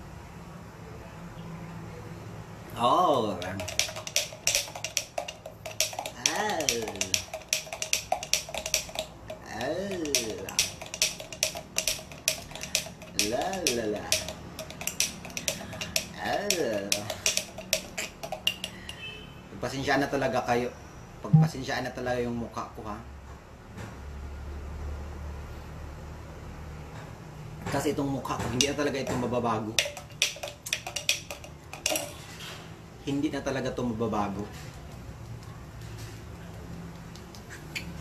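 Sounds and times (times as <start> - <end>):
small sharp clicks and taps: 3.4 - 19.0, 28.4 - 32.2, 36.9 - 37.9
metal spoon clinking glass mug: 3.4 - 19.1, 28.6 - 32.2
man talking: 6.2 - 7.2, 9.4 - 10.6, 21.3 - 23.0.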